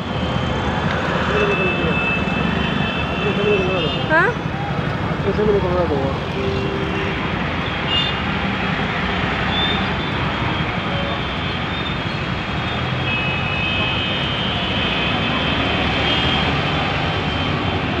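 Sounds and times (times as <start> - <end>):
traffic din: 0.0 - 18.0.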